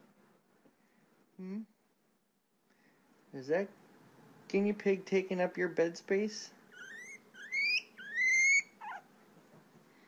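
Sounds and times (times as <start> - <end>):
guinea pig squealing: 6.7 - 9.1.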